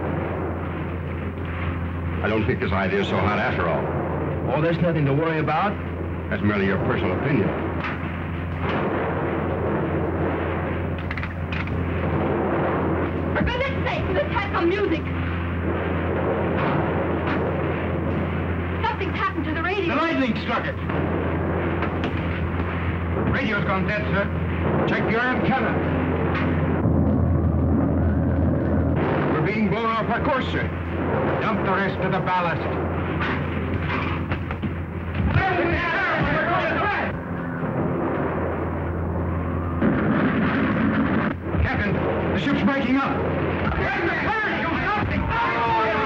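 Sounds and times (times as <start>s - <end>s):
low soundtrack hum: 0.0s - 46.0s
steady low drone: 0.0s - 46.0s
storm rumble: 0.0s - 46.0s
indistinct shouting voices: 35.3s - 37.2s.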